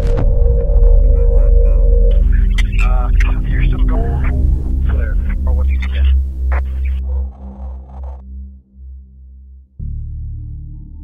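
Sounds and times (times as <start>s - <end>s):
deep electronic drone: 0.0s - 11.0s
garbled processed voice: 1.0s - 8.2s.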